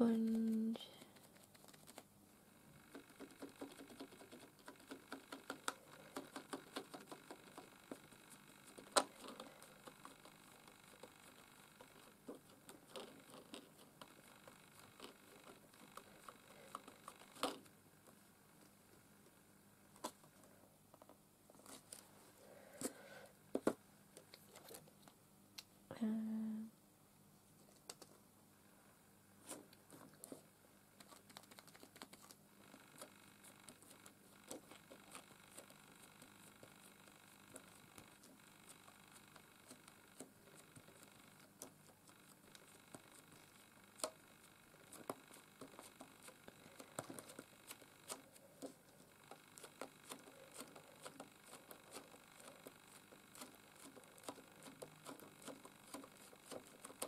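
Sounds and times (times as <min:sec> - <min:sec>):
sponge dabbing paint: 0:44.8 - 0:57.0
stencil being handled: 0:44.8 - 0:57.0.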